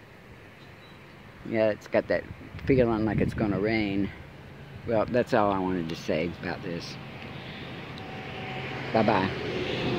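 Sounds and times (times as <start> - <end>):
distant engine hum: 0.0 - 9.9.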